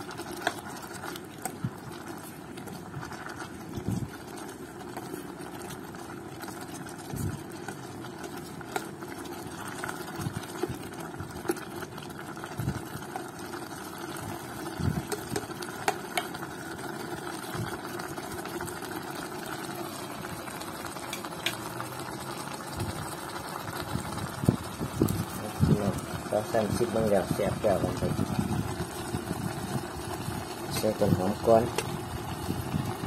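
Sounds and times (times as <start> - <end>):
stew simmering: 0.0 - 33.0
spoon stirring stew: 0.1 - 11.6, 14.1 - 16.5.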